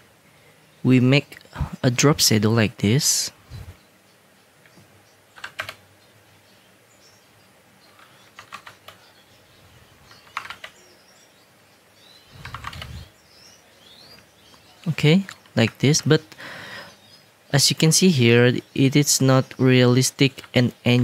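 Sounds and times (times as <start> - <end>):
keyboard keys clicking: 5.4 - 5.8, 8.0 - 9.0, 10.1 - 10.8, 12.4 - 13.0.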